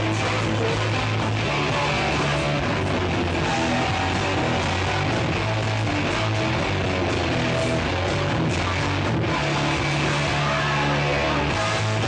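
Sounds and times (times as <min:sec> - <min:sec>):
hard rock band playing live: 0:00.0 - 0:12.0.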